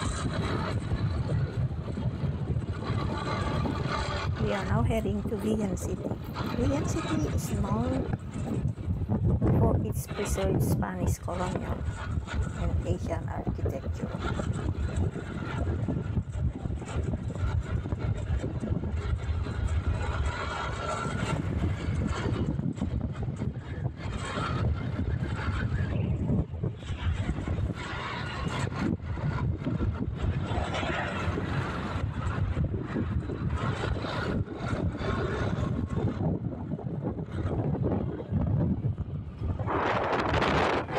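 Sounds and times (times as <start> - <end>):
wind buffeting microphone: 0.0 - 40.9.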